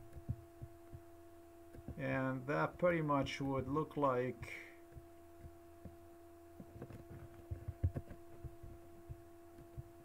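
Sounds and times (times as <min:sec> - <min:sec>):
computer mouse clicks and thumps: 0:00.0 - 0:01.1, 0:01.7 - 0:02.0, 0:06.6 - 0:10.0
faint pitched hum: 0:00.0 - 0:10.0.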